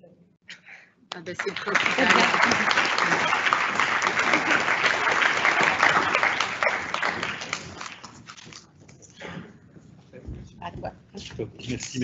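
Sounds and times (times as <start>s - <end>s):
applause: 1.1s - 8.4s.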